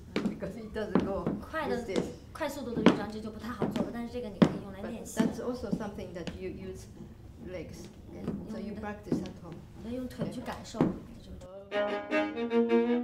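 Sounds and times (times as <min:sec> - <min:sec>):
boots stamping on wooden floor: 0:00.0 - 0:07.1, 0:08.2 - 0:11.0.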